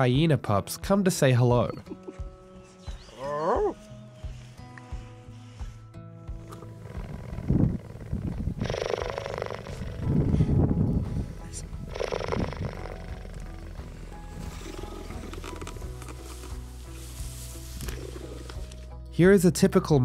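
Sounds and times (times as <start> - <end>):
background music: 0.0 - 20.0
cheetah purring: 6.4 - 16.4, 17.7 - 18.8.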